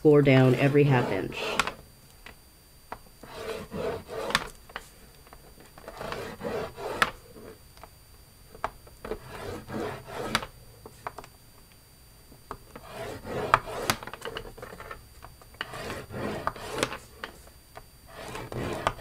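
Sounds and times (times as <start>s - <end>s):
stylus rubbing on cardstock: 0.3s - 1.8s, 3.2s - 4.5s, 5.8s - 7.6s, 9.1s - 10.5s, 12.8s - 14.1s, 15.6s - 17.5s, 18.1s - 19.0s.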